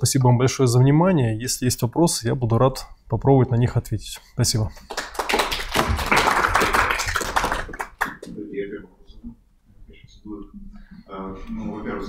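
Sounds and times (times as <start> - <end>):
audience applauding: 4.9 - 8.3.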